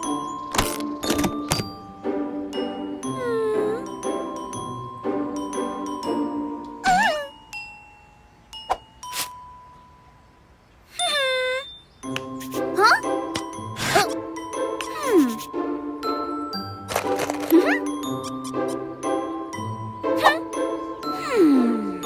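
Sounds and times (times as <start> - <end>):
cartoon music with bell notes: 0.0 - 22.0.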